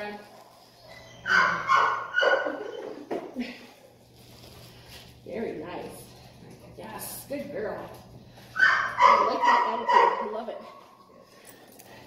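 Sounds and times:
dog barking: 1.3 - 2.7, 8.6 - 10.4.

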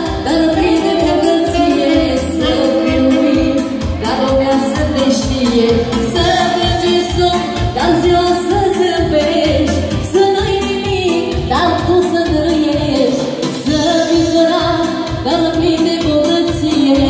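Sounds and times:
folk dance band: 0.0 - 17.0
woman singing into microphone: 0.0 - 17.0.

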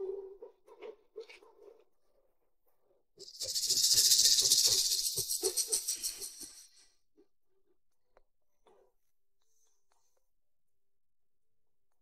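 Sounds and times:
rhythmic rattling hiss: 3.2 - 6.8.

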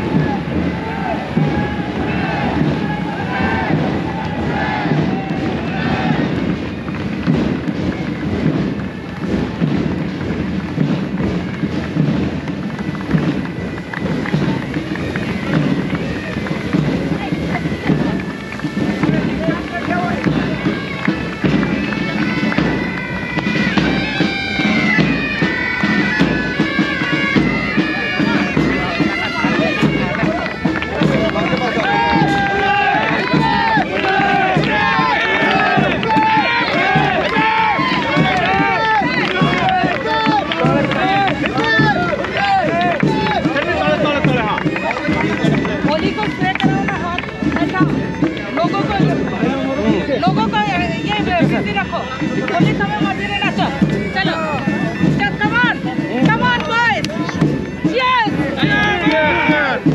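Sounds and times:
bagpipes playing over a drone: 0.0 - 59.9
crowd voices: 0.0 - 59.9.

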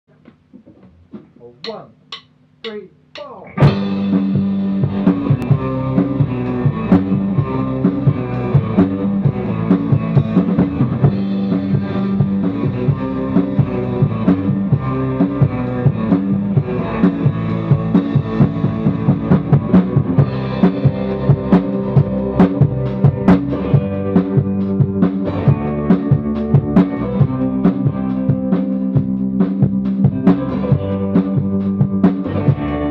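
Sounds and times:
drum kit beat: 0.1 - 32.9
electric guitars: 3.4 - 32.9
rock band playing live: 3.4 - 32.9.

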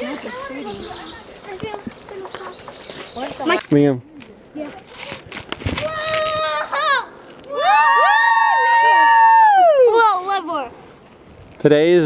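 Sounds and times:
children yelling: 5.8 - 10.3.

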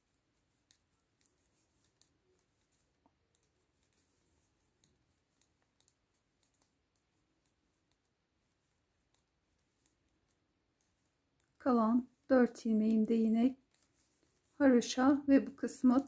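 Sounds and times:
knitting needles clicking: 0.0 - 16.0.

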